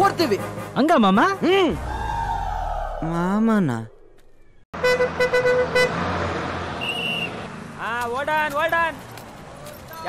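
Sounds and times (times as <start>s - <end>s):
road noise: 0.0s - 10.0s
bus horn tooting: 4.8s - 7.4s.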